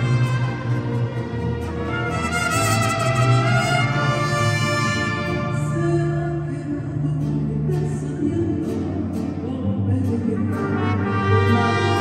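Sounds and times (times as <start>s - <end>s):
trumpets: 0.0s - 5.9s, 10.6s - 12.0s
violins: 0.0s - 6.5s
guitars: 0.0s - 12.0s.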